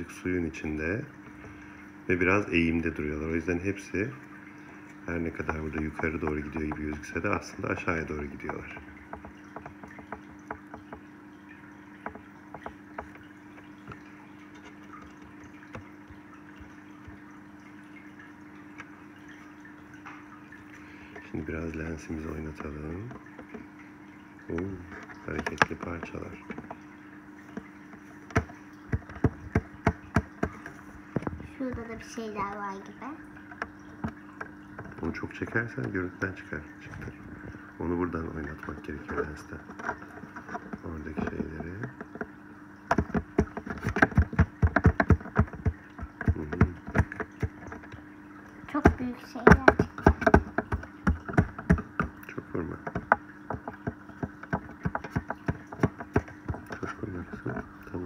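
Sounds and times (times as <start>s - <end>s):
steady low hum: 0.0s - 58.0s
phone handling clicks and knocks: 28.3s - 31.4s, 42.9s - 48.0s, 49.6s - 52.2s, 52.8s - 57.0s.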